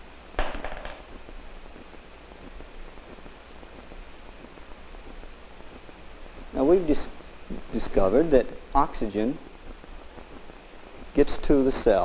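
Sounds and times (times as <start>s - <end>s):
steady hiss: 0.0s - 12.0s
marble rattling in plastic ball: 0.4s - 1.2s.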